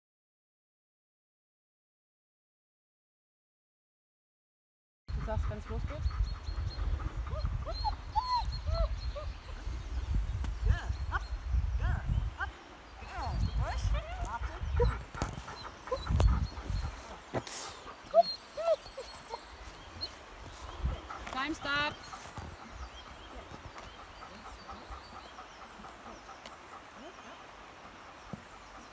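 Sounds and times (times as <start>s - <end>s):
wind rumbling on microphone: 5.1s - 26.2s
dog whining and yipping: 7.3s - 9.3s, 18.1s - 20.2s.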